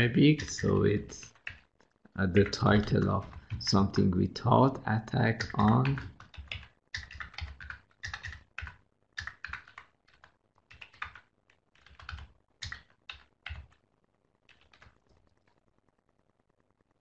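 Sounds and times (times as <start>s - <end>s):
computer keyboard typing: 0.0s - 4.1s, 5.0s - 13.8s, 14.5s - 15.0s.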